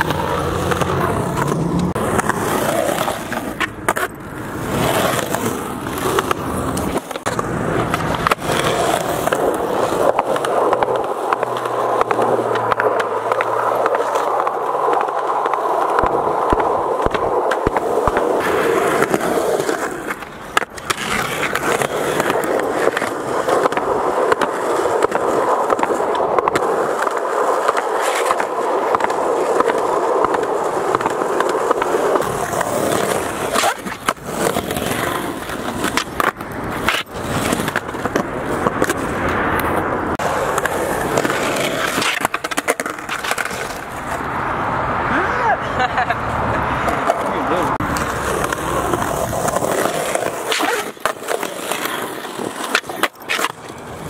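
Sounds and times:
skateboard wheels rolling on concrete: 0.0s - 54.0s.

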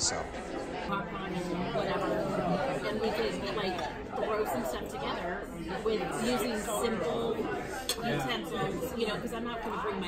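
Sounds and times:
dining room chatter: 0.0s - 10.0s.

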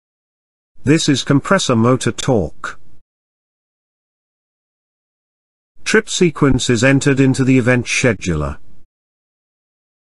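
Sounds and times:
synthesized narrator voice: 0.8s - 2.8s, 5.8s - 8.7s.

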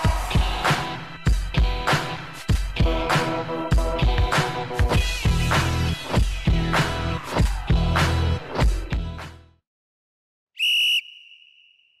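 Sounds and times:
whistle blast: 10.6s - 12.0s.

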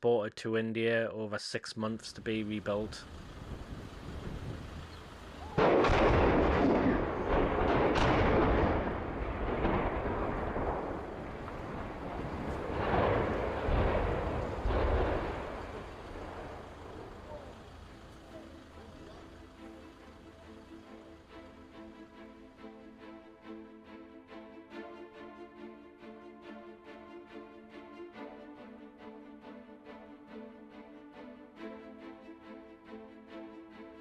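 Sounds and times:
rumble of cranes collapsing: 3.0s - 19.7s
explosive blast: 5.4s - 17.4s
bangs: 5.5s - 17.7s.

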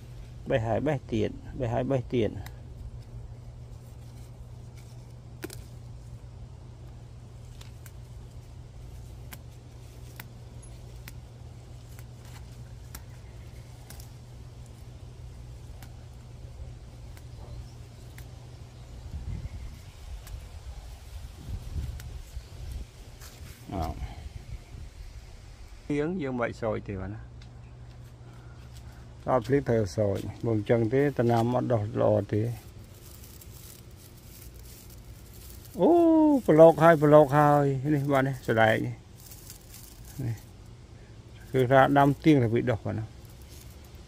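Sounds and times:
leaves rustling: 0.0s - 26.1s, 27.8s - 44.0s
steady low hum: 0.0s - 44.0s
herb stems snapping: 4.2s - 6.1s, 6.8s - 19.1s, 19.9s - 24.0s, 27.4s - 40.6s, 43.1s - 44.0s.

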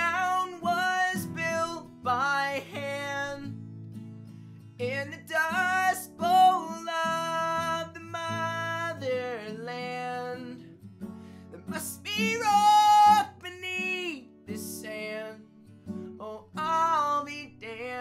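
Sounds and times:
person singing: 0.0s - 3.5s, 4.8s - 10.6s, 11.5s - 15.4s, 16.2s - 18.0s
strummed acoustic guitar: 0.0s - 18.0s.

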